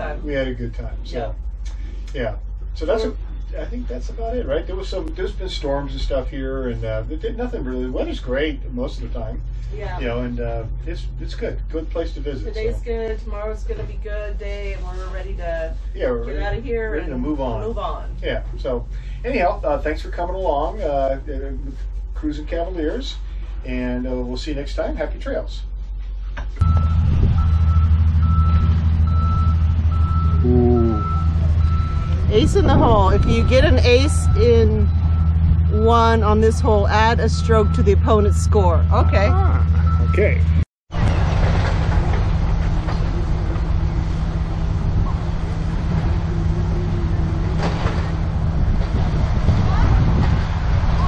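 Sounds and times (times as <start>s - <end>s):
loud low rumble: 0.0s - 25.8s, 26.6s - 51.0s
reversing alarm beeping: 26.6s - 40.6s
wind buffeting microphone: 26.7s - 28.5s, 31.6s - 35.7s, 41.0s - 51.0s.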